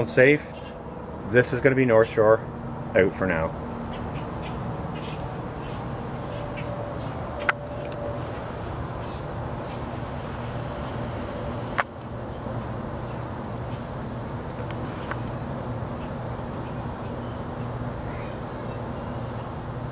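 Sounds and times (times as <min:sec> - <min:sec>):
low background hum: 0:00.0 - 0:19.9
sharp click: 0:11.6 - 0:12.0, 0:14.6 - 0:15.3.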